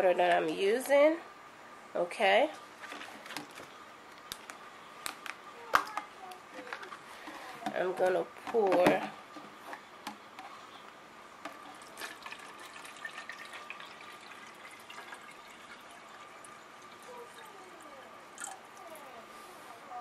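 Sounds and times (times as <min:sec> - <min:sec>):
water pouring into plastic tank: 0:11.5 - 0:17.5.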